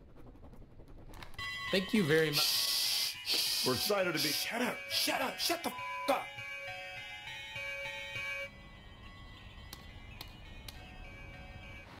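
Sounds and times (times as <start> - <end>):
electronic doorbell chime: 3.3 - 12.0.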